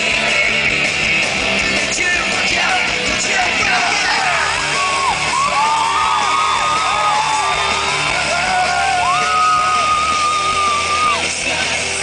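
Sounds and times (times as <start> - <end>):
live rock band playing: 0.0 - 12.0
crowd cheering: 3.4 - 12.0.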